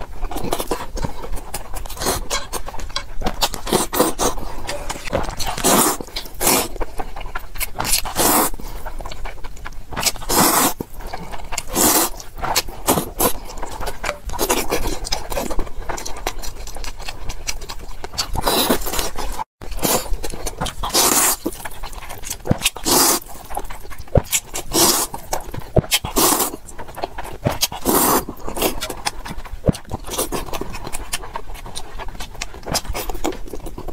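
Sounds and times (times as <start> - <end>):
wet noodle slurping: 3.4 - 6.8, 8.0 - 8.8, 10.0 - 13.8, 20.6 - 23.8, 24.4 - 26.6, 27.8 - 28.9.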